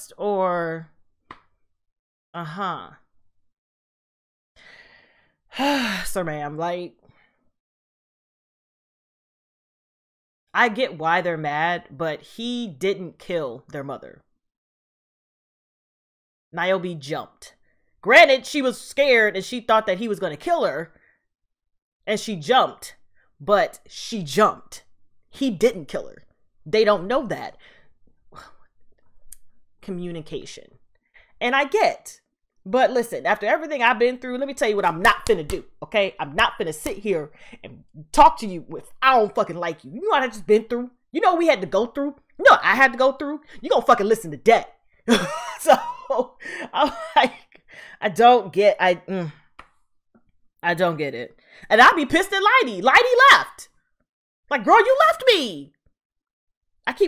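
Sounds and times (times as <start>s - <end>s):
woman speaking: 0.0s - 0.9s, 2.4s - 3.0s, 5.6s - 7.0s, 10.6s - 14.1s, 16.6s - 17.5s, 18.1s - 20.9s, 22.1s - 24.8s, 25.4s - 27.6s, 29.8s - 30.7s, 31.4s - 49.4s, 50.6s - 53.6s, 54.5s - 55.7s
woman breathing softly: 4.6s - 5.4s
woman breathing: 4.6s - 6.1s, 27.6s - 28.5s, 47.6s - 48.0s.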